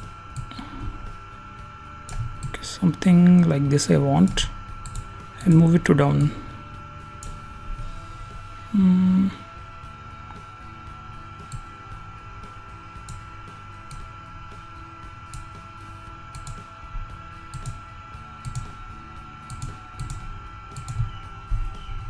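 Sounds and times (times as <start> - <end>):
electrical hum: 0.0 - 22.0
faint high whine: 0.0 - 22.0
computer mouse clicks: 2.0 - 2.6, 4.8 - 6.3, 16.3 - 16.6, 17.5 - 17.8, 18.4 - 18.7, 19.5 - 20.2, 20.8 - 21.1.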